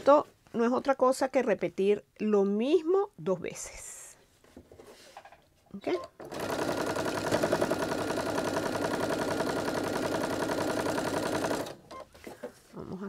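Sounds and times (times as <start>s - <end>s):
sewing machine stitching: 6.0s - 12.1s.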